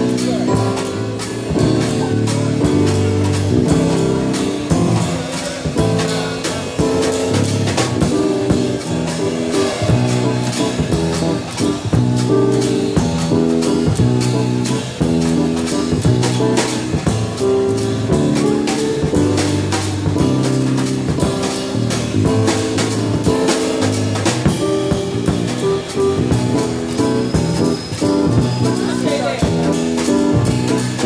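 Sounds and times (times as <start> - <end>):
drum kit beat: 0.0 - 31.0
electric bass: 0.0 - 31.0
keyboard chords: 0.0 - 31.0.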